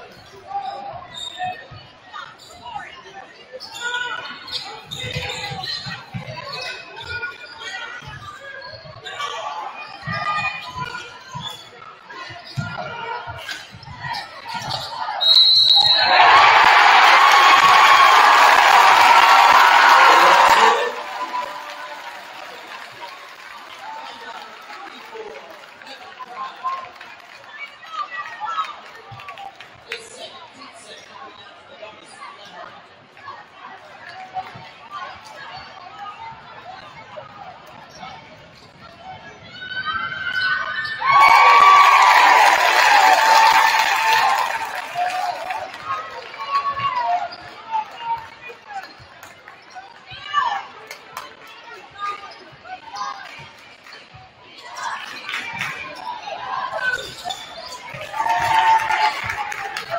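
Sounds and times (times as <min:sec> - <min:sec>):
crowd chatter: 0:00.0 - 0:59.9
loud shout: 0:15.2 - 0:22.9, 0:39.6 - 0:48.0, 0:57.9 - 0:59.9
louder voices: 0:16.0 - 0:22.8.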